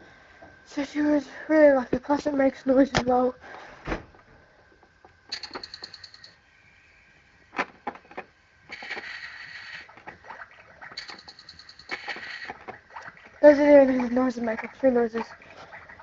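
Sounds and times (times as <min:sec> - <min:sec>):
toy stove hiss: 0:05.2 - 0:16.0
toy stove rapid clicks: 0:05.3 - 0:06.4, 0:08.7 - 0:10.0, 0:10.9 - 0:13.6.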